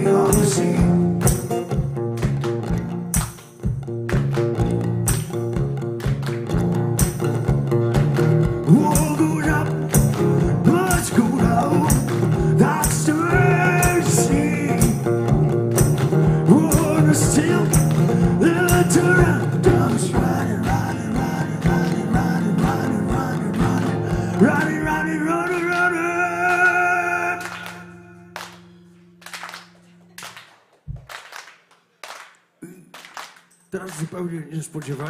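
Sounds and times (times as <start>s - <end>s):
man singing: 0.0s - 1.6s, 8.6s - 15.3s, 16.3s - 28.3s
strummed acoustic guitar: 0.0s - 29.2s
low thumping beat: 0.3s - 25.0s.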